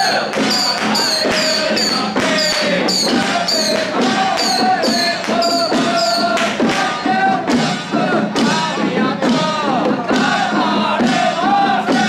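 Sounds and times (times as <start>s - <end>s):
men chanting: 0.0s - 12.0s
ringing percussion: 0.0s - 12.0s
small handheld drums beating: 0.0s - 12.0s.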